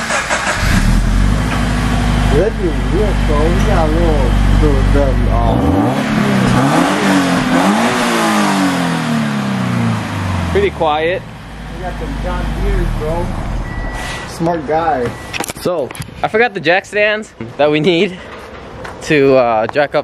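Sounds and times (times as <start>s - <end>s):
car engine starting and revving: 0.0s - 14.1s.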